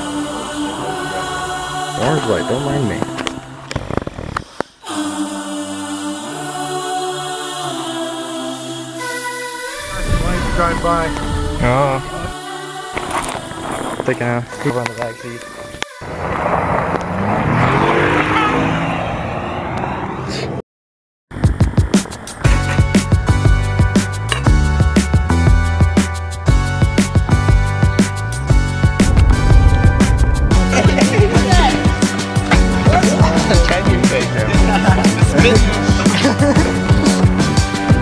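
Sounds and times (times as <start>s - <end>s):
tyres on gravel road: 13.0s - 20.6s
car engine accelerating: 16.0s - 20.3s, 28.9s - 34.0s.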